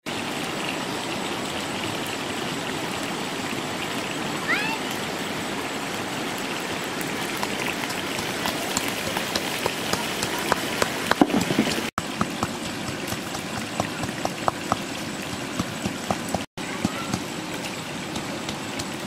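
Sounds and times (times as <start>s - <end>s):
pestle pounding in a bowl: 7.4s - 17.3s, 18.1s - 19.0s.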